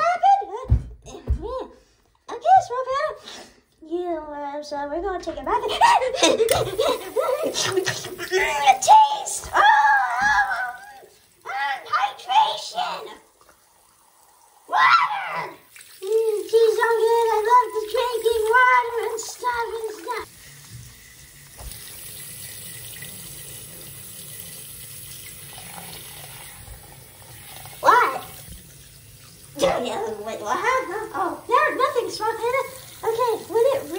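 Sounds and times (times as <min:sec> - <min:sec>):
person making wordless vocal sounds: 0:05.6 - 0:11.8
tap water running into sink: 0:06.4 - 0:33.9.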